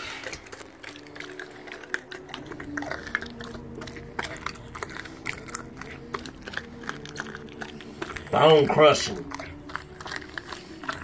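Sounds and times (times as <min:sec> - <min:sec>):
dog chewing and crunching bones: 0:00.0 - 0:11.0.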